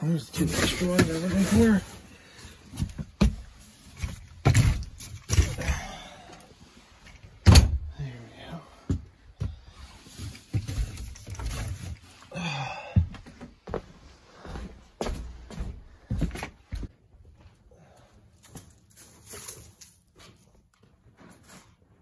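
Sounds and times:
knocks and thumps of handling: 2.7 - 5.7.

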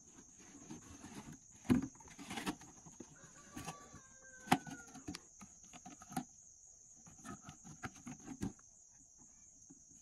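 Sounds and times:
plastic jug crinkling and knocking: 0.0 - 6.3, 7.1 - 8.7.

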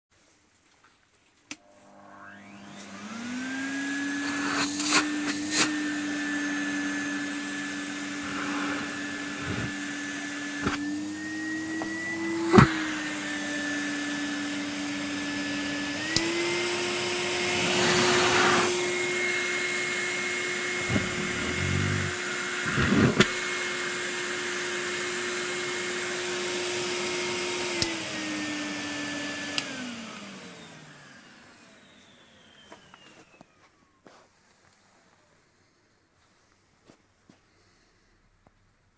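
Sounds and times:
vacuum cleaner motor whine: 1.5 - 35.3.

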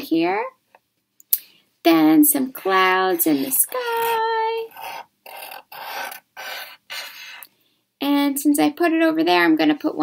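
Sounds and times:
marker scratching on paper: 3.1 - 7.4.

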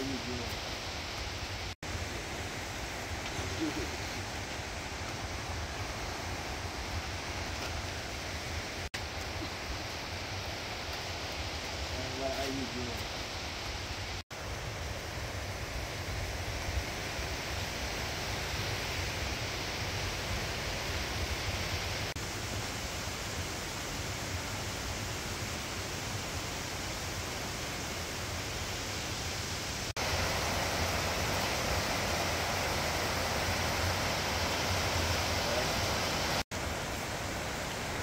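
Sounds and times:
water rushing over rocks: 0.0 - 38.0.

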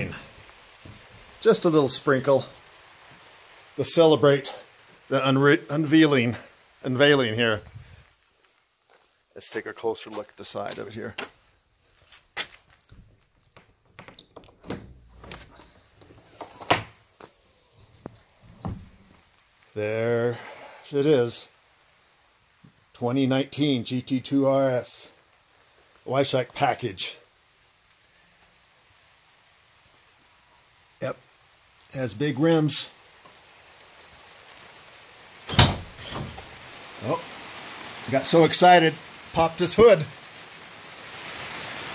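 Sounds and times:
trailer door latch clicks and knocks: 13.9 - 15.4, 35.5 - 36.4.

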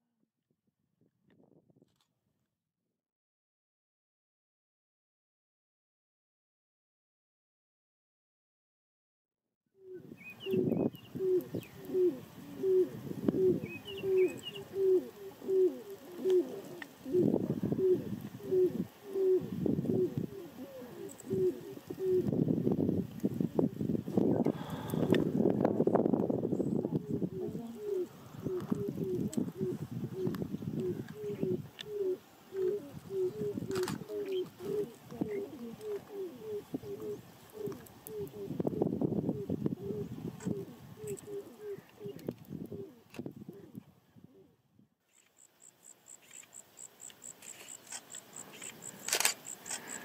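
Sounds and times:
small bird chirping: 9.8 - 12.2, 13.5 - 14.9, 45.0 - 50.0
cranes calling: 9.8 - 22.3, 26.8 - 38.6, 39.8 - 43.0, 46.2 - 50.0
cranes booming calls: 26.8 - 38.6.

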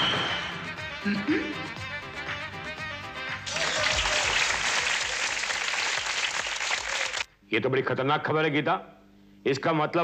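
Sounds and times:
background music: 0.0 - 5.8
applause: 3.4 - 7.3.

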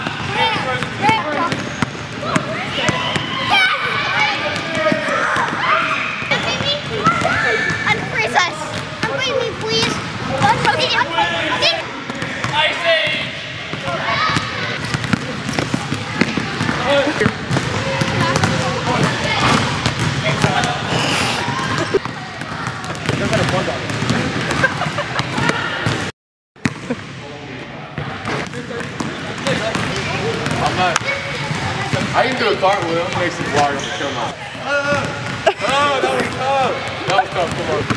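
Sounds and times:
basketballs bouncing on gym floor: 0.0 - 3.6, 4.2 - 27.2, 28.0 - 34.0, 34.7 - 37.9
children's voices and shouts: 2.2 - 11.9.

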